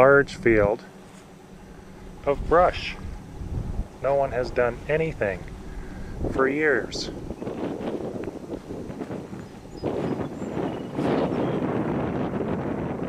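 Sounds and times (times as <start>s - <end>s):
wind blowing across microphone: 0.0s - 13.0s.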